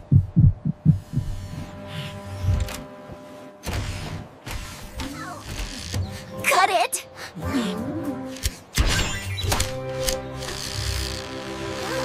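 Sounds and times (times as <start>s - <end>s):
heartbeat thumps: 0.0s - 1.8s.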